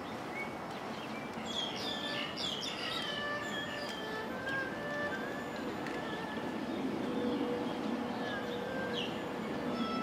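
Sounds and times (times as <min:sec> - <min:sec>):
birds chirping: 0:00.0 - 0:10.0
background music held notes: 0:01.4 - 0:10.0.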